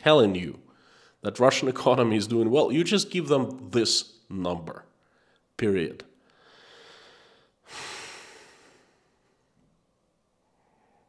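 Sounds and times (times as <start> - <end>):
man breathing: 0.7 - 1.2, 6.2 - 9.6, 10.4 - 11.0.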